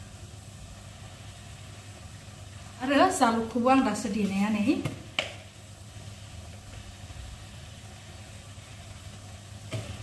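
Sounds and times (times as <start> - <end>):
gas burner hum and hiss: 0.0 - 10.0.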